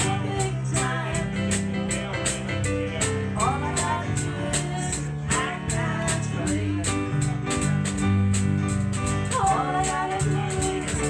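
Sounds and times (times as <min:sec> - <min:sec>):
woman singing: 0:00.0 - 0:02.4, 0:03.0 - 0:07.7, 0:09.3 - 0:11.0
drum kit cymbal beat: 0:00.0 - 0:11.0
electric keyboards: 0:00.0 - 0:11.0.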